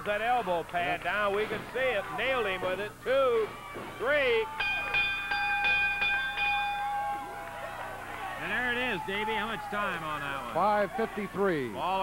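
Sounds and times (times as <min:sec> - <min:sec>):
ring bell struck rapidly: 0:04.5 - 0:07.2.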